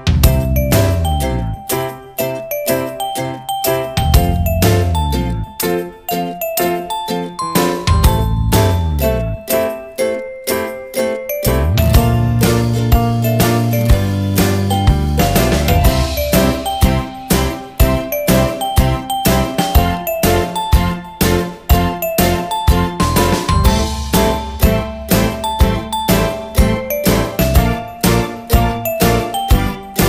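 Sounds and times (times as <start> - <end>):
upbeat bell-like music: 0.0 - 30.0.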